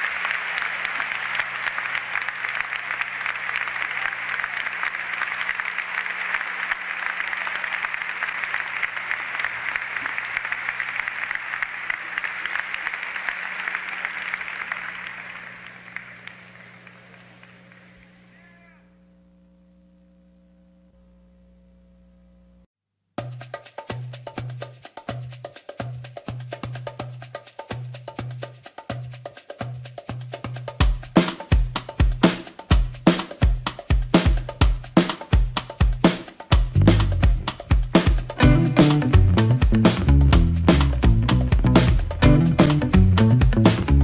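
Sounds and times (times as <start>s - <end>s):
large audience applauding: 0.0s - 18.6s, 37.9s - 40.9s, 41.8s - 43.8s
low electrical hum: 13.4s - 22.7s.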